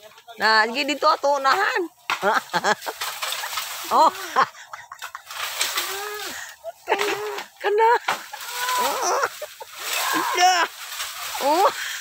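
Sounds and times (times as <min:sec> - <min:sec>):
pole dragged through undergrowth: 0:00.0 - 0:12.0
voice-like pitched cry: 0:08.4 - 0:10.7.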